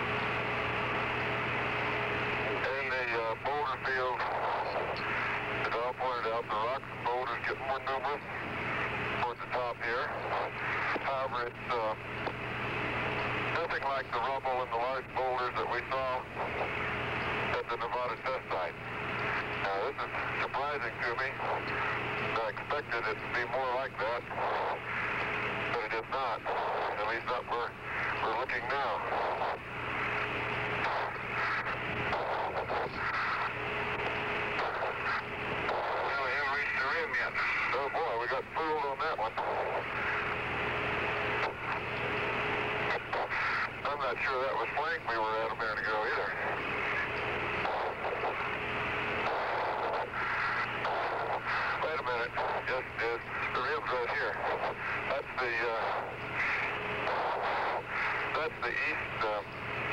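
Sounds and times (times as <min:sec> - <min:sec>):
radio static: 0:00.0 - 0:59.9
steady hum: 0:00.0 - 0:59.9
garbled voices over radio: 0:02.5 - 0:12.1, 0:13.4 - 0:59.9.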